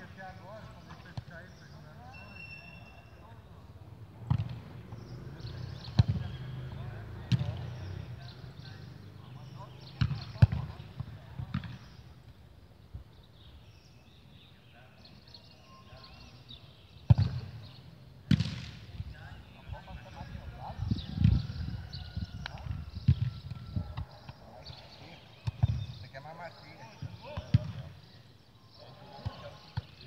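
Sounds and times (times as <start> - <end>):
football kick thuds: 4.3 - 4.6, 17.1 - 17.5, 18.3 - 18.8, 27.4 - 27.8.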